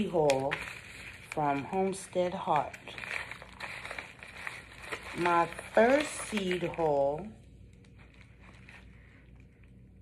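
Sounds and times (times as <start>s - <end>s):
faint crackles: 0.0s - 9.8s
paper envelope crinkling: 0.0s - 10.0s.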